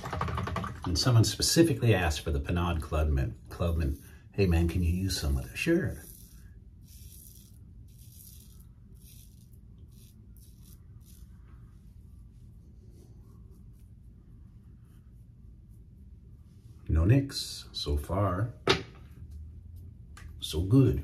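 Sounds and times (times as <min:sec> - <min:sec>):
razor scraping stubble: 0:05.2 - 0:11.4.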